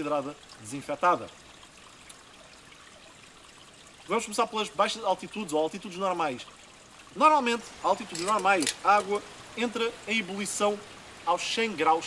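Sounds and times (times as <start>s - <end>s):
small stream trickling: 0.0s - 12.0s.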